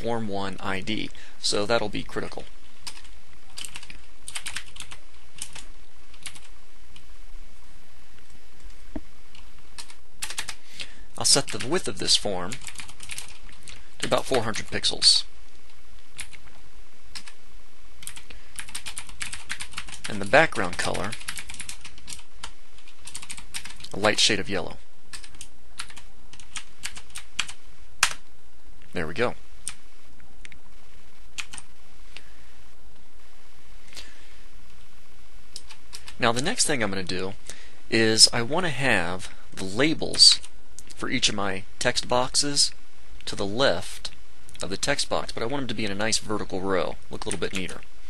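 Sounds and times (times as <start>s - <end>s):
faint steady hiss: 0.0s - 48.0s
steady low hum: 0.0s - 48.0s
typing on computer keyboard: 2.8s - 6.5s, 9.8s - 10.6s, 12.5s - 14.5s, 18.0s - 23.9s, 25.1s - 28.2s, 31.4s - 31.6s.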